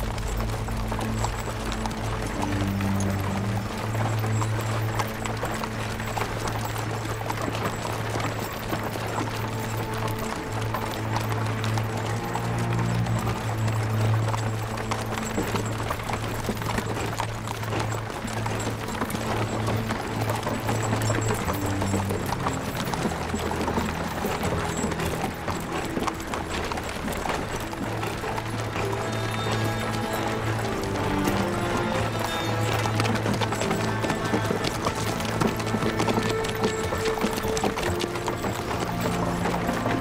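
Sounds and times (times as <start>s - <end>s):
dramatic orchestral film music: 0.0s - 40.0s
horse hooves clopping on dirt: 0.0s - 40.0s.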